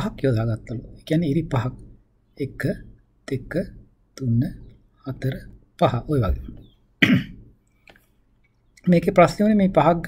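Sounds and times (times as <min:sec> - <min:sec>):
person speaking: 0:05.2 - 0:06.7
person coughing: 0:07.0 - 0:07.4.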